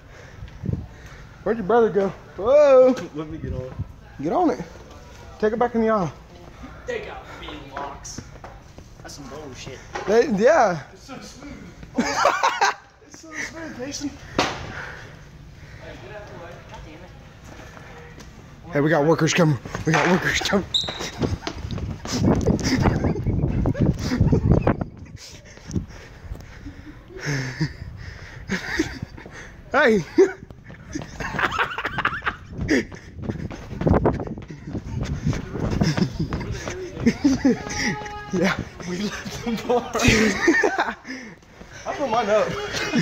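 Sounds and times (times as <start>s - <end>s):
quick footsteps: 7.2s - 10.4s, 17.4s - 26.6s, 28.8s - 43.0s
people laughing: 11.8s - 14.2s, 19.9s - 43.0s
faint voices: 32.6s - 40.6s
young people yelping: 35.2s - 43.0s.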